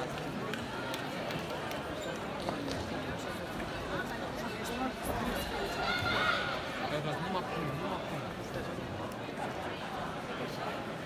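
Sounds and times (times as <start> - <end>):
background hubbub: 0.0 - 11.0
voices echoing in a hall: 0.0 - 11.0.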